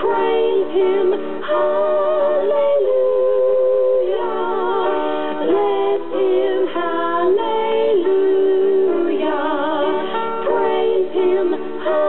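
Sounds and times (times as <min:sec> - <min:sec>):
women singing gospel: 0:00.0 - 0:12.0.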